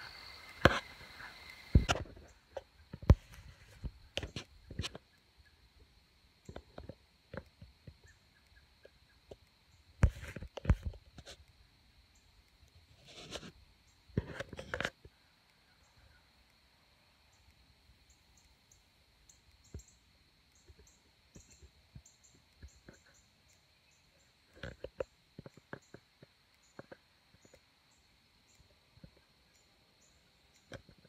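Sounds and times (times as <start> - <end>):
rustles and scrapes: 0.0 - 5.0, 10.0 - 11.5, 12.9 - 13.6, 14.2 - 15.1
faint ticks: 0.0 - 31.0
high insect drone: 0.0 - 31.0.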